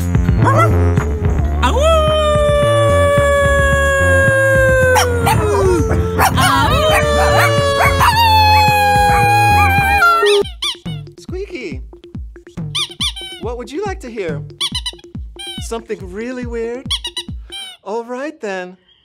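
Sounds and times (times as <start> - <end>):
music with steady beat: 0.0 - 17.6
small dog howling: 0.4 - 10.4
short squeaky chirps: 12.7 - 13.4, 14.6 - 15.6, 16.9 - 17.8.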